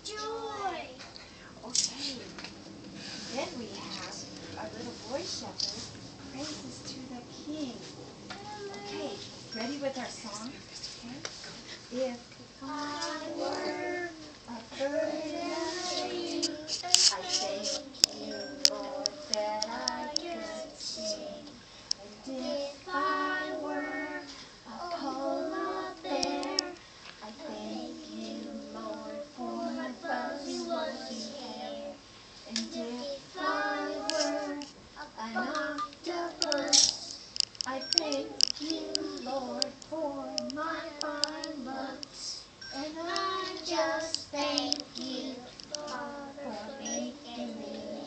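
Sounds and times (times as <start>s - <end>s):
young children singing together: 12.6s - 48.0s.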